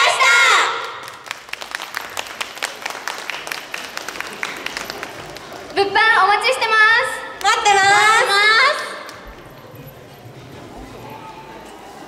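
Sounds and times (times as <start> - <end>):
faint murmur of voices: 4.0 - 12.0.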